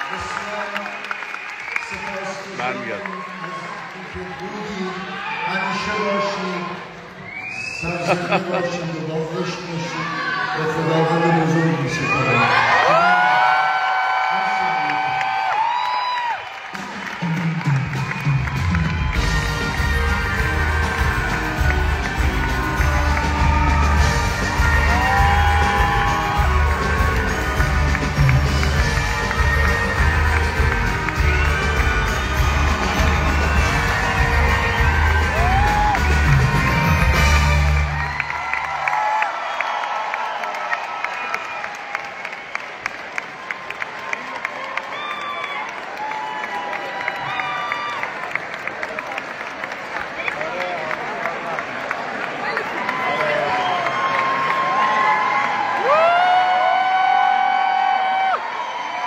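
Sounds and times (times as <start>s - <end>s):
audience clapping: 0.0s - 8.2s, 12.4s - 59.0s
crowd cheering: 0.0s - 59.0s
loud rhythmic claps: 14.9s - 58.4s.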